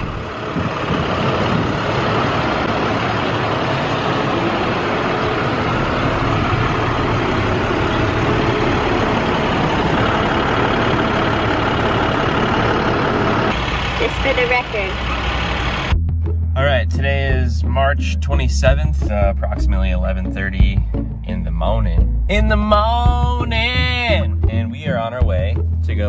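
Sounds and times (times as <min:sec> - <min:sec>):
boom lift engine running: 0:00.0 - 0:26.0.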